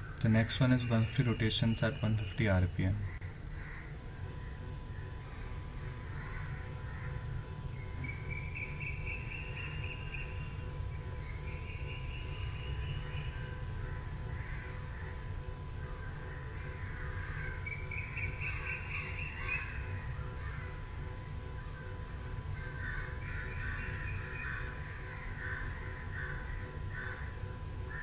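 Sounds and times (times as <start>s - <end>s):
stepper motor humming and whining: 0.0s - 28.0s.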